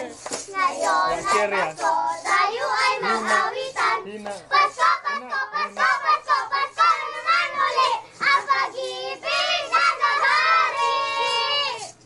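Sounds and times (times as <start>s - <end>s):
children singing a carol: 0.4s - 12.0s.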